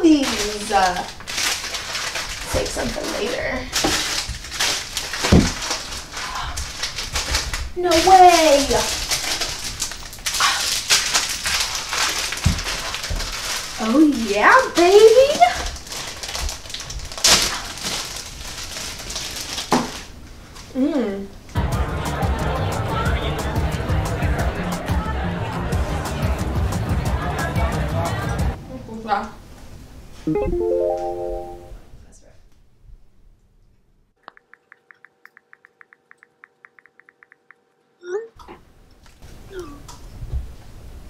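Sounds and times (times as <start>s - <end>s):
plastic wrapper crackling: 0.0s - 20.1s.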